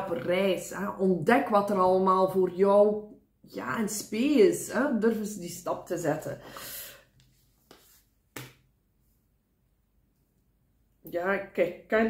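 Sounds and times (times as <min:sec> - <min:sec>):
card snapped on tabletop: 0:08.3 - 0:08.6.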